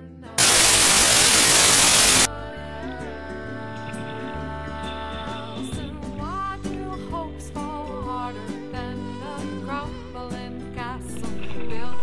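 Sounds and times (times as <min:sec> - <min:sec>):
loud static hiss: 0:00.4 - 0:02.3.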